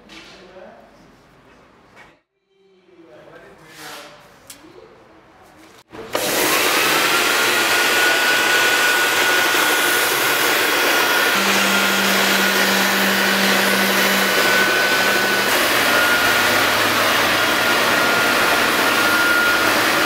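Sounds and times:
vacuum cleaner motor running: 6.0s - 20.0s.

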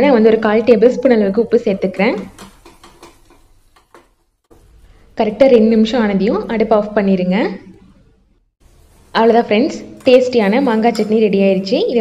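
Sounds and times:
wooden spatula stirring chutney: 1.9s - 4.2s.

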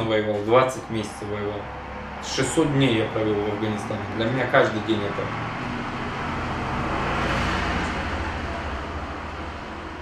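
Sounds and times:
road vehicle passing by: 0.0s - 10.0s.

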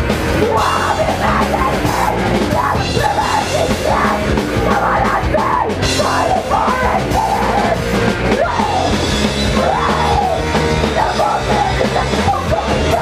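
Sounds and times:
distorted electric guitars: 0.0s - 13.0s
pounding drum kit: 0.0s - 13.0s.

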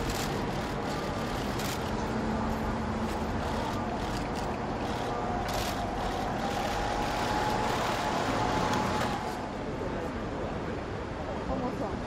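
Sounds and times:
vehicles passing: 0.0s - 11.5s.

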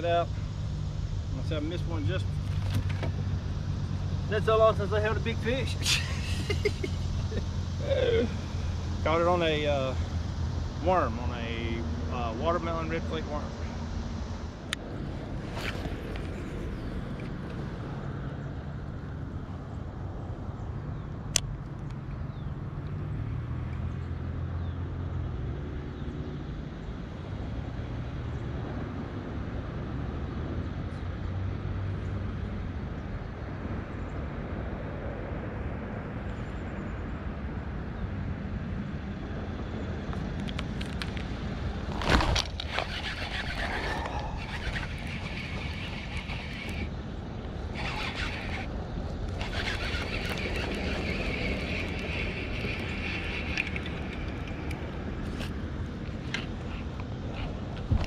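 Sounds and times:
wind rumble on microphone: 37.1s - 58.0s
fishing reel whirring and ticking: 42.6s - 47.0s, 47.6s - 55.5s.

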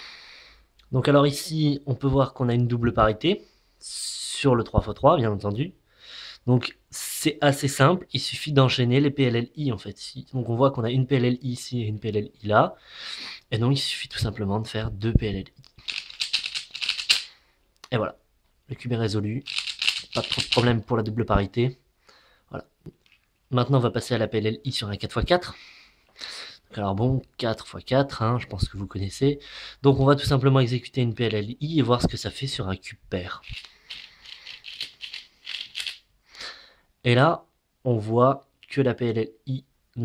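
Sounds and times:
puzzle cube layers clicking: 15.8s - 17.3s, 19.4s - 20.8s, 33.4s - 36.0s.

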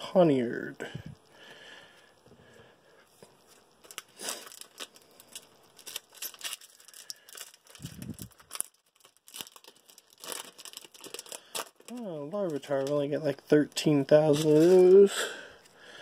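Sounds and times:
foil pack tearing and crinkling: 3.8s - 13.0s, 14.1s - 15.1s.

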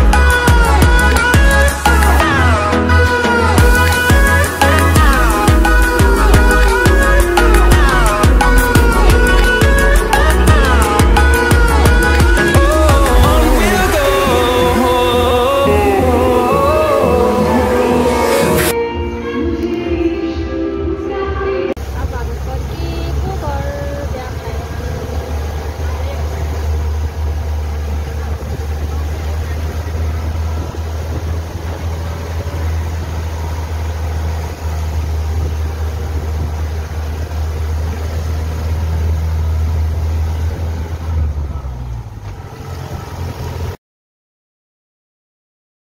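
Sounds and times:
music: 0.0s - 21.8s
vehicle rumble from inside: 0.0s - 43.8s.

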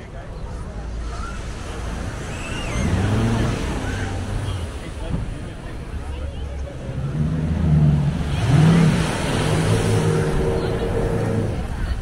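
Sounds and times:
beach noise: 0.0s - 12.0s
engine running and revving: 1.8s - 4.8s, 6.5s - 12.0s.

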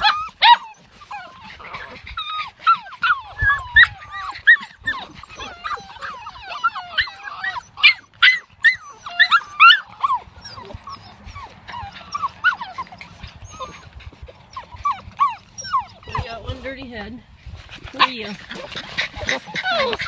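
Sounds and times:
puppies whining and yelping: 0.0s - 20.0s.

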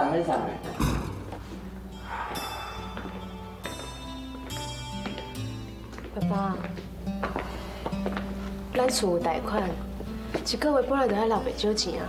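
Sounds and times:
soft bell-like music: 1.9s - 6.4s.

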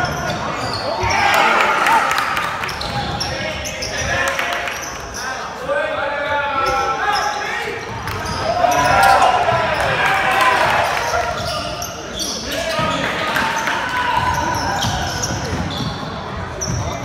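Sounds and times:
people shouting across a court: 0.0s - 4.8s, 5.7s - 11.7s, 12.4s - 15.8s.

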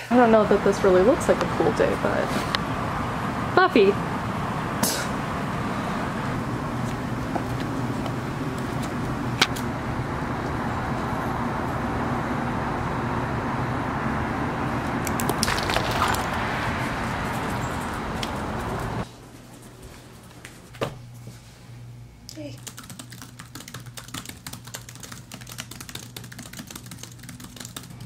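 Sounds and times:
outdoor background rush: 0.0s - 20.4s.

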